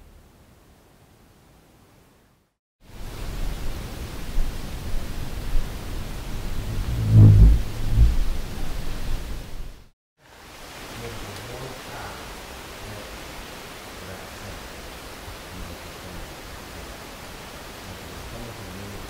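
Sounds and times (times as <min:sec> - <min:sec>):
background hiss: 0:00.0 - 0:19.0
low fluttering buzz: 0:05.7 - 0:09.7.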